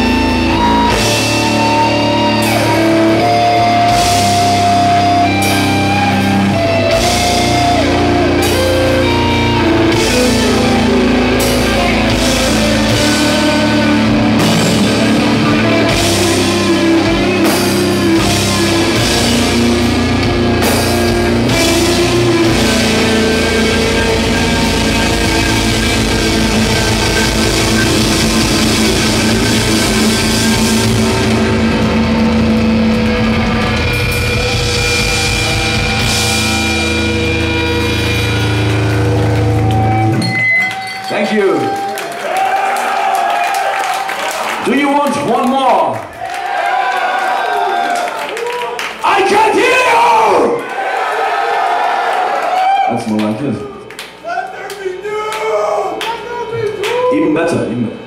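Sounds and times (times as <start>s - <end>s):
bass guitar: 0.0s - 41.7s
drum kit: 0.0s - 41.8s
distorted electric guitars: 0.0s - 42.0s.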